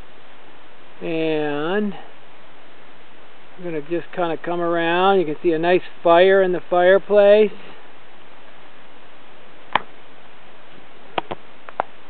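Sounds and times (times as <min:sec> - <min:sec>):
steady hiss: 0:00.0 - 0:12.0
campfire crackling and popping: 0:09.7 - 0:10.0.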